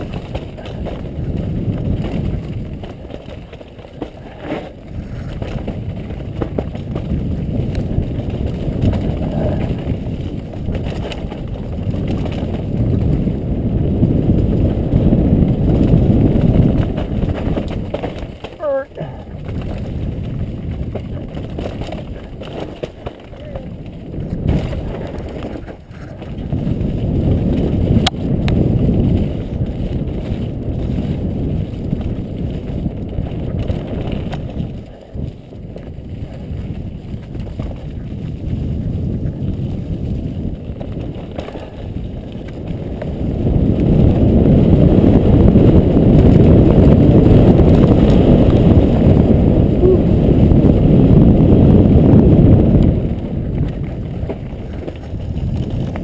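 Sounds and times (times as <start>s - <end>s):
bike rattling over dirt trail: 0.0s - 56.0s
wind buffeting microphone: 0.0s - 56.0s.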